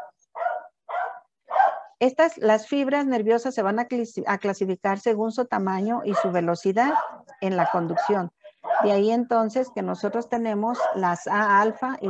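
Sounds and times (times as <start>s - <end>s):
dog barking: 0.0s - 2.0s, 6.0s - 9.0s, 10.7s - 11.2s.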